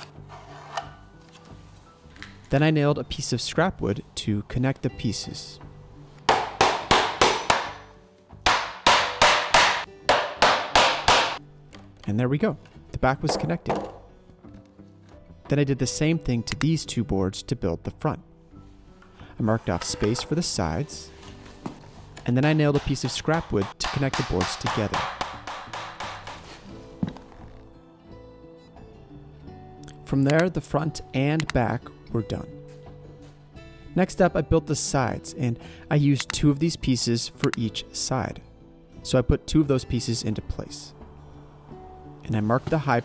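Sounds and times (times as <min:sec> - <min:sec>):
hammer driving nail into wood: 0:06.3 - 0:11.4, 0:22.5 - 0:26.6.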